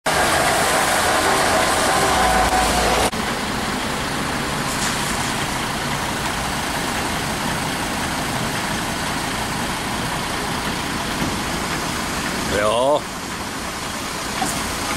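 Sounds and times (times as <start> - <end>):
truck engine running: 0.0 - 14.9
winch whining: 0.1 - 3.4.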